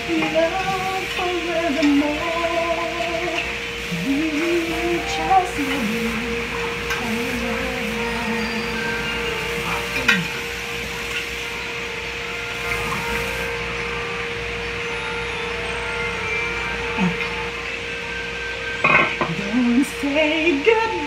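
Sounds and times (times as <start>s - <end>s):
tap water running: 0.0s - 14.4s
dishes and glassware clinking: 18.8s - 19.4s.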